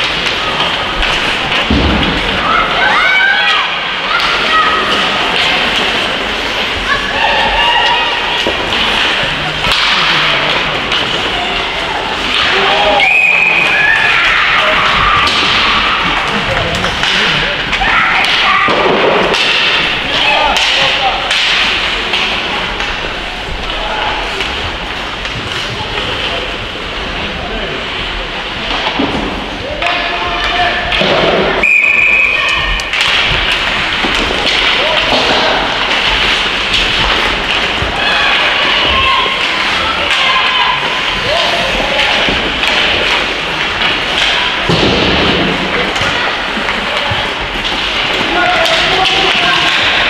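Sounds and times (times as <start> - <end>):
pucks and sticks thudding: 0.0 - 50.0
voices of players and spectators: 0.0 - 50.0
whistle blasts: 13.0 - 13.6, 31.6 - 32.5.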